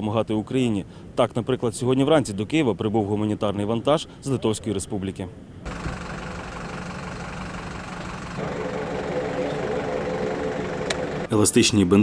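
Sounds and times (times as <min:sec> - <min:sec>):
pitched hum: 0:05.7 - 0:11.3
turboprop engines droning: 0:05.7 - 0:11.3.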